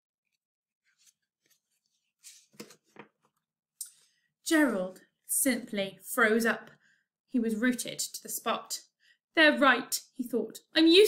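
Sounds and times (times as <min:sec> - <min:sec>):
book pages turning: 0:00.8 - 0:03.4.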